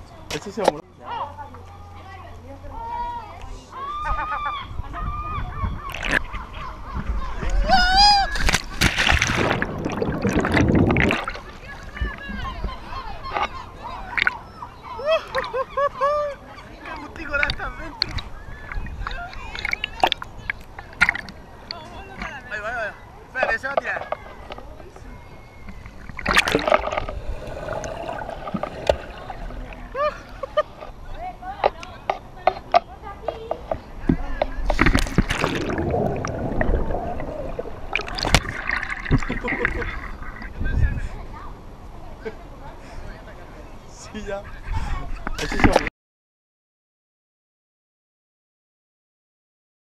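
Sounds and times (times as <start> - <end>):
gulls calling: 3.8 - 31.8, 35.0 - 40.7
wind rumble: 9.0 - 12.6, 34.8 - 41.2.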